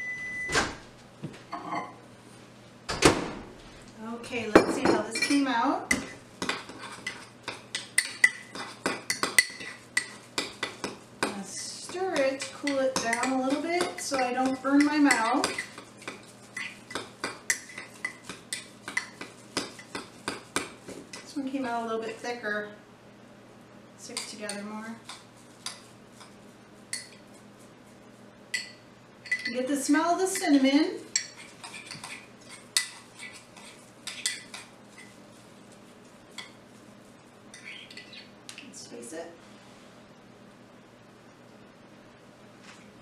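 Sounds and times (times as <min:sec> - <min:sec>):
metal spoon clinking on bowl: 0:28.6 - 0:29.6.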